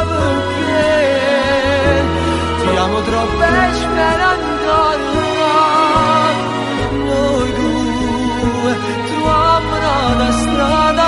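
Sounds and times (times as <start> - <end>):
instrumental backing: 0.0 - 11.0
man singing pop melody: 0.0 - 11.0
pulsing bass line: 0.0 - 11.0.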